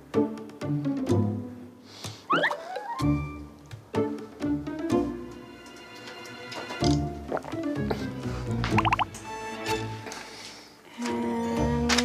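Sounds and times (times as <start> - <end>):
light background music: 0.0 - 12.0
cartoon water-drop bloops: 2.3 - 3.0, 7.3 - 7.7, 8.7 - 9.2.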